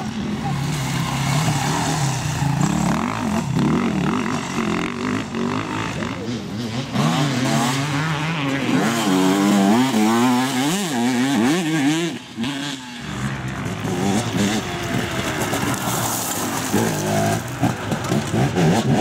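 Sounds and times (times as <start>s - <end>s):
dirt bike engines revving: 0.0s - 19.0s.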